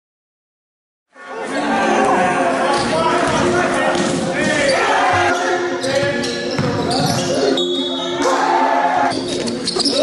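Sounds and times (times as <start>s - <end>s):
voices: 1.2s - 10.0s
basketball bouncing on court: 5.9s - 7.3s.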